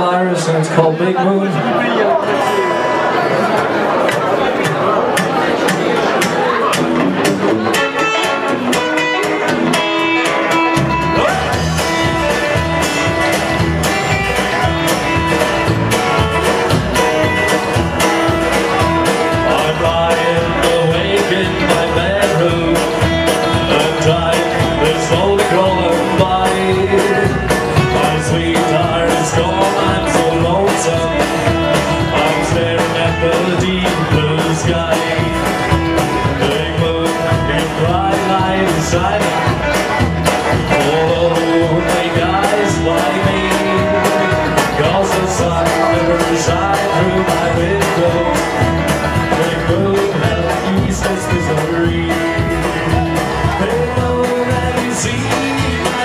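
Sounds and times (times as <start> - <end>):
acoustic guitar: 0.0 - 56.0
electric guitar: 1.5 - 56.0
upright bass steady beat: 5.7 - 56.0.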